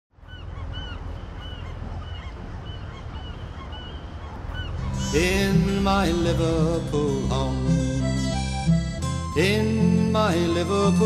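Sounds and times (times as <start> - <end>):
flock of birds calling: 0.2 - 5.7.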